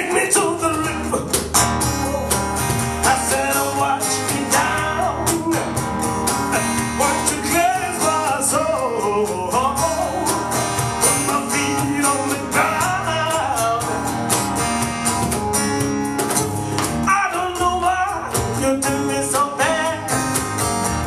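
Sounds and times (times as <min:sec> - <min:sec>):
man singing: 0:00.0 - 0:14.4, 0:17.0 - 0:20.6
acoustic guitar strumming: 0:00.0 - 0:21.0
cajon beat: 0:00.0 - 0:21.0.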